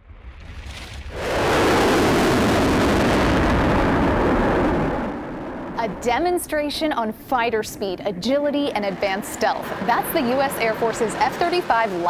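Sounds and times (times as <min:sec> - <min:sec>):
jet fighter roar: 0:00.5 - 0:12.0.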